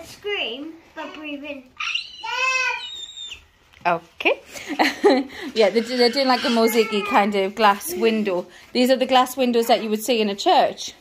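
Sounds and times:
girl squealing: 1.8s - 3.4s.

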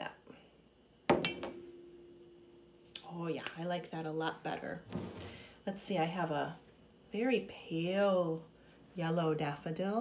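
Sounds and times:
glass jar clink ringing: 1.1s - 2.0s.

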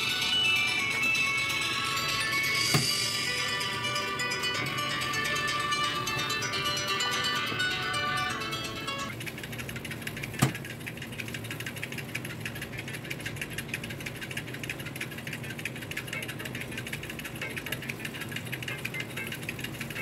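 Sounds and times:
fast ticking and crackle: 0.0s - 20.0s
oven hum: 0.0s - 20.0s.

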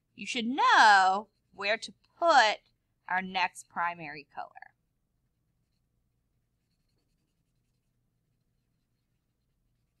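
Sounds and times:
marker scratching on paper: 5.6s - 10.0s.

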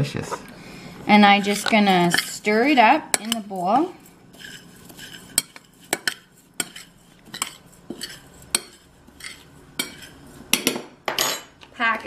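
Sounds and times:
metal spoon clinking ceramic bowl: 3.1s - 3.5s.

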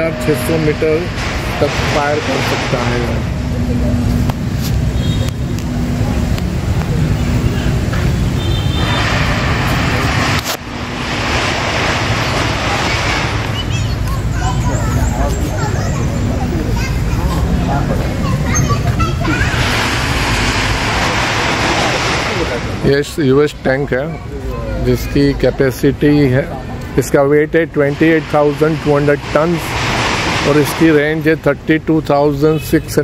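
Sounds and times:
traffic rumble: 0.0s - 33.0s.

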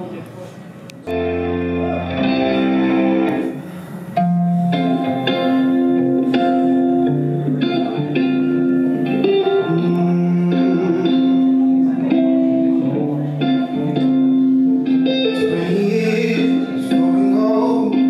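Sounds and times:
plucked guitar chords: 1.0s - 18.0s.

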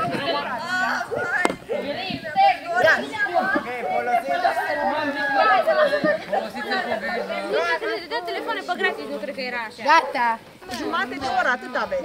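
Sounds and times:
young voices chattering: 0.0s - 12.0s.

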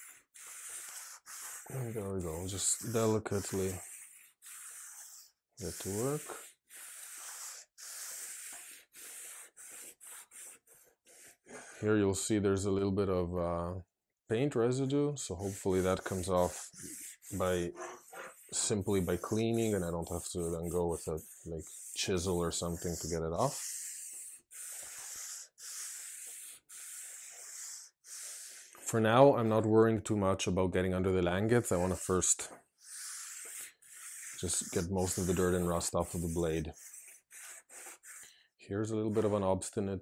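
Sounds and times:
sponge scrubbing metal blade: 0.0s - 5.0s, 5.6s - 6.7s, 15.4s - 24.8s, 33.6s - 38.0s.

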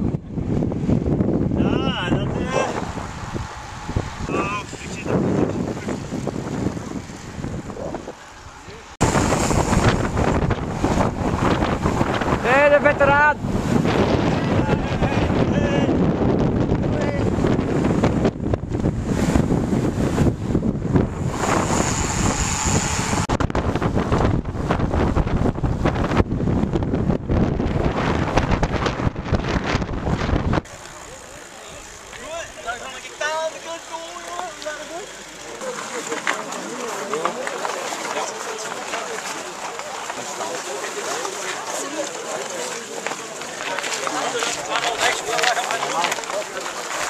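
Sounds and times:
wind buffeting microphone: 0.0s - 30.8s
people talking: 1.6s - 2.8s, 4.2s - 6.2s, 12.4s - 13.4s, 14.2s - 16.0s, 16.8s - 17.3s, 30.7s - 47.0s.

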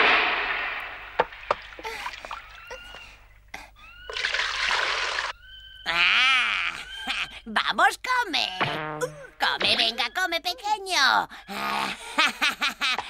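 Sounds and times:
water splashing: 0.0s - 2.8s, 4.1s - 5.3s
cartoon voice quavering cry: 5.8s - 7.5s.

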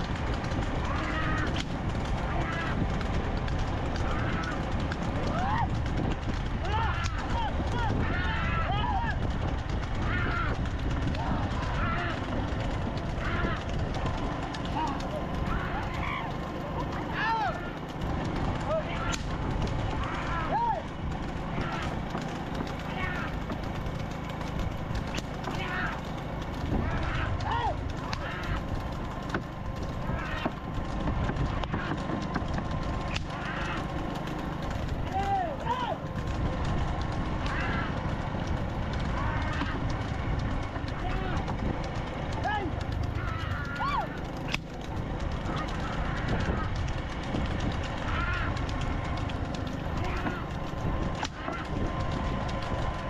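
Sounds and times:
bulls' hooves: 0.0s - 53.0s
low rumble: 0.0s - 53.0s
riders shouting: 0.0s - 53.0s
wooden cart clattering: 0.0s - 53.0s.

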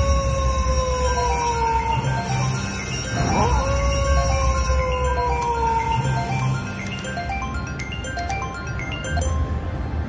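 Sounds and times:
wolf howl: 0.0s - 6.2s.

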